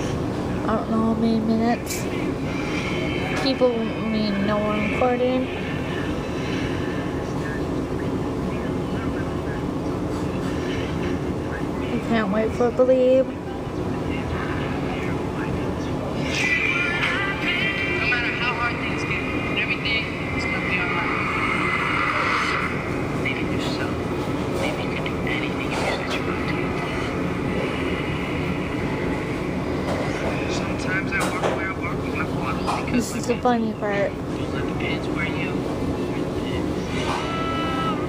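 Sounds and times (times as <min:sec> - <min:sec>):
faint music from small speaker: 0:00.0 - 0:38.0
low machinery rumble: 0:00.0 - 0:38.0.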